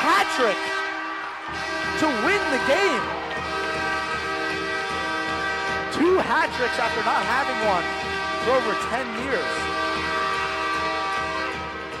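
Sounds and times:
goal horn blast: 0:00.0 - 0:12.0.

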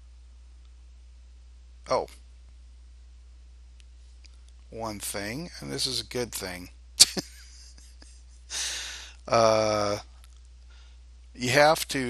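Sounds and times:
steady low hum: 0:00.0 - 0:12.0
man saying oh: 0:09.3 - 0:10.0.

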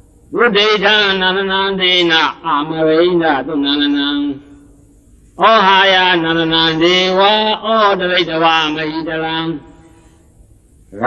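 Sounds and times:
person chanting in long tones: 0:00.3 - 0:04.8, 0:05.4 - 0:10.2.

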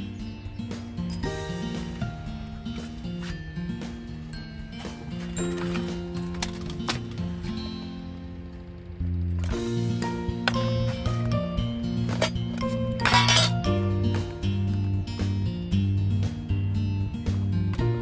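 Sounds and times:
background music: 0:00.0 - 0:18.0
metal tin clinking: 0:12.0 - 0:13.7
metal lid clattering: 0:12.1 - 0:13.6.

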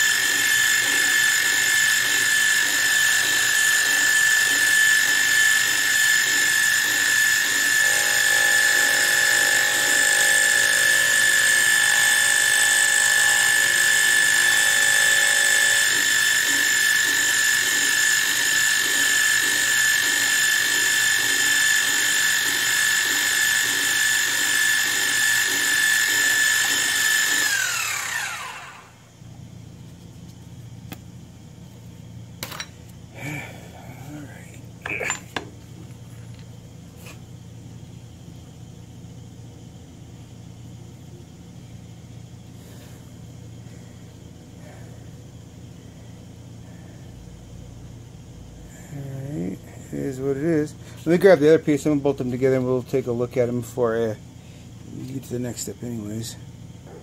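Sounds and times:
spindle winding down: 0:00.0 - 0:29.1
milling spindle high whine: 0:00.0 - 0:38.6.

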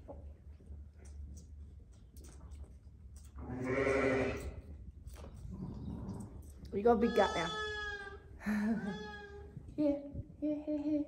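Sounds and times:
lamb bleating: 0:03.5 - 0:04.4, 0:07.1 - 0:08.2.

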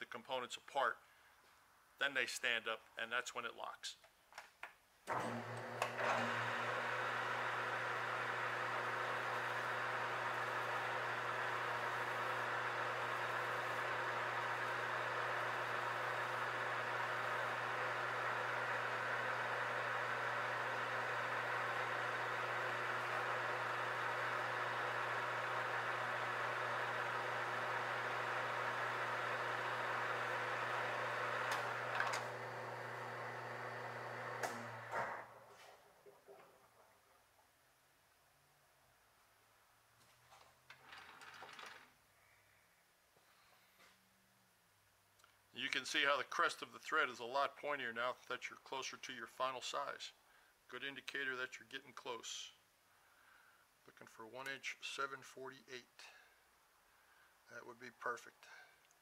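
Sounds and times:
metal lathe running: 0:05.2 - 0:35.0
lathe gear whine: 0:06.0 - 0:34.9.

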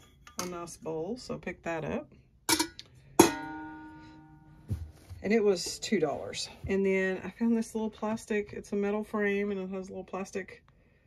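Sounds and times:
metal bowl ringing: 0:00.0 - 0:00.7, 0:02.5 - 0:04.6
metal bowl knocked down: 0:02.5 - 0:04.0.

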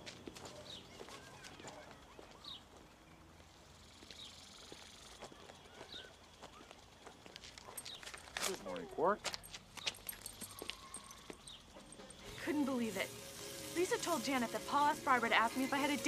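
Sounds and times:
light footsteps: 0:00.0 - 0:12.4.

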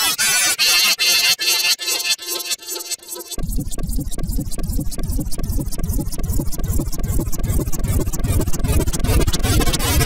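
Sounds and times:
distorted stuttering logo audio: 0:03.4 - 0:10.0.

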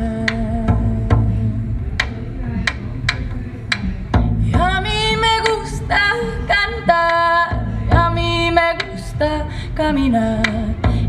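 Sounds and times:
frame drum strikes: 0:00.2 - 0:05.7.

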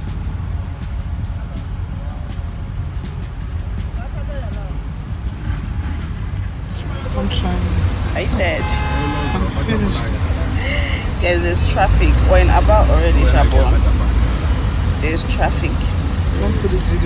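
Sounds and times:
vehicle engine rumble: 0:00.0 - 0:17.0
faint voices: 0:00.8 - 0:17.0.

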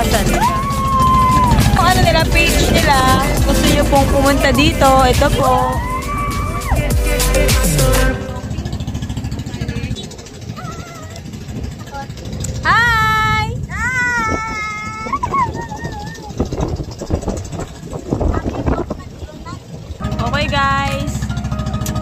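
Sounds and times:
high-pitched voices crying out: 0:00.0 - 0:03.2, 0:05.4 - 0:07.0, 0:10.5 - 0:11.4, 0:12.6 - 0:16.7
small boat engine running: 0:00.0 - 0:22.0.

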